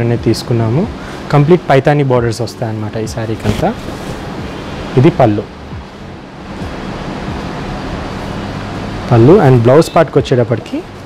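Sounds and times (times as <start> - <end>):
background hiss: 0.0 - 11.0
low electrical hum: 0.0 - 11.0.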